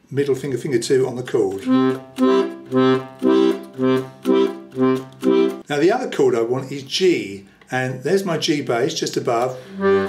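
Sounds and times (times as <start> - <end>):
man speaking: 0.1 - 1.7, 5.6 - 9.7
accordion oom-pah bass: 1.6 - 5.6, 9.7 - 10.0.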